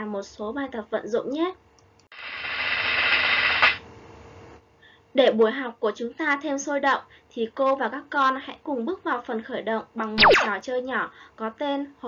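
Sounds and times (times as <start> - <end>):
sharp click: 10.2 - 10.5.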